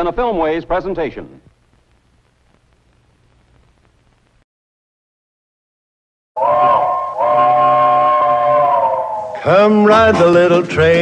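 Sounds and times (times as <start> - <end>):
steam locomotive chime whistle: 6.4 - 10.2.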